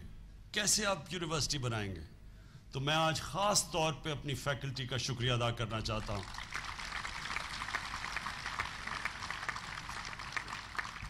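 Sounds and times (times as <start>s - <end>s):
audience applauding: 6.2s - 11.0s.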